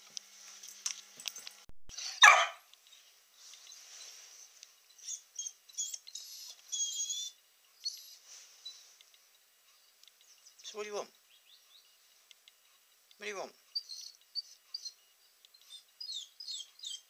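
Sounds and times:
puppy whining: 1.9 - 2.6, 5.0 - 8.8, 13.7 - 17.0
puppy barking: 1.9 - 2.7.

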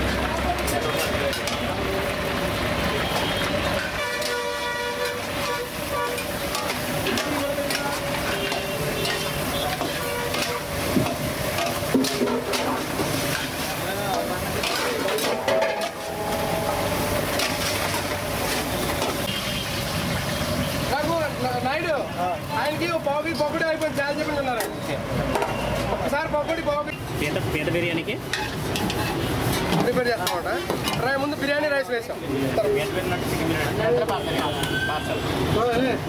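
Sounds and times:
curry frying in a wok: 0.0 - 36.0
horn sounding: 3.0 - 6.6, 15.2 - 19.9
metal ladle stirring in a wok: 3.4 - 20.8, 28.1 - 31.0
brief high tone: 15.3 - 17.2.

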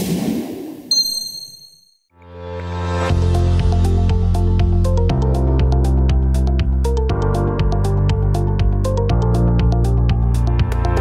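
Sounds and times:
high-pitched ding: 0.9 - 2.0
electronic music with bass: 3.0 - 11.0.

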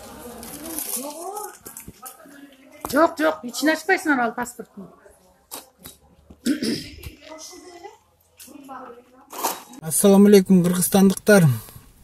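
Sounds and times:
person coughing: 6.4 - 7.0.

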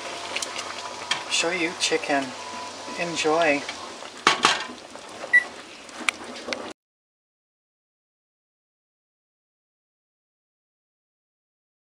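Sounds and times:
wooden spoon stirring in pot: 0.0 - 6.7.

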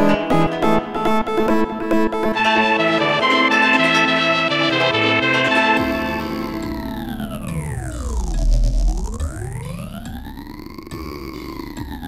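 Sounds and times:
synthesizer tone gliding in pitch: 0.0 - 11.0
heavy low bass: 6.2 - 12.0.

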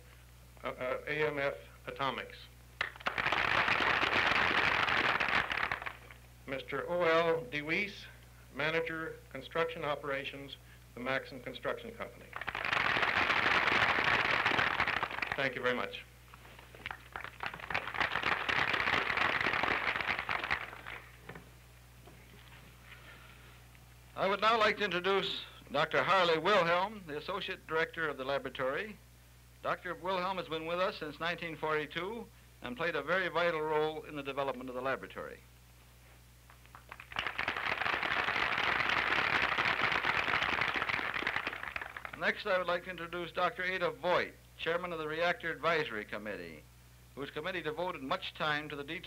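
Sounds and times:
steady low hum: 0.0 - 49.0
audience applauding: 2.8 - 6.2, 12.3 - 15.5, 16.8 - 21.2, 36.7 - 42.2.

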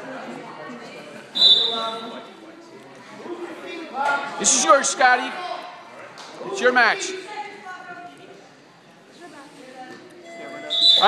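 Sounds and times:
faint spectator chatter: 0.0 - 11.0
referee's whistle blast: 1.4 - 2.1, 10.7 - 11.0.

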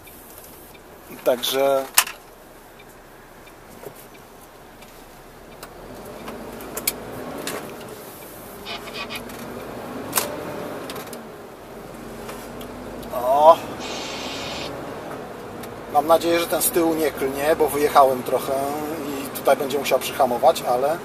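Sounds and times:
truck engine and road noise: 0.0 - 21.0.

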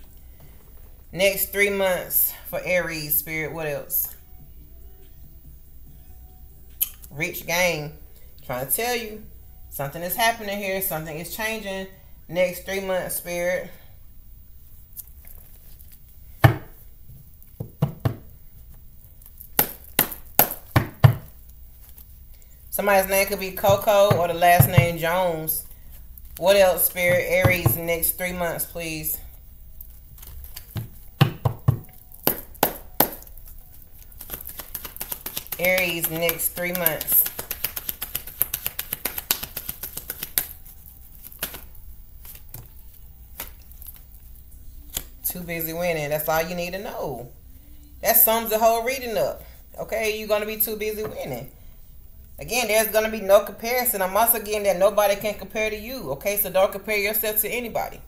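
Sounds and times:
playing cards shuffling: 29.8 - 45.1.

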